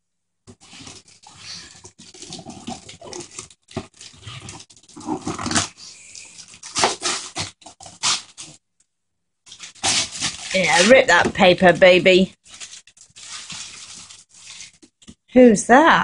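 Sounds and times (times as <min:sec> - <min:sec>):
wrapping paper tearing and crinkling: 0:00.5 - 0:08.6, 0:09.5 - 0:15.1.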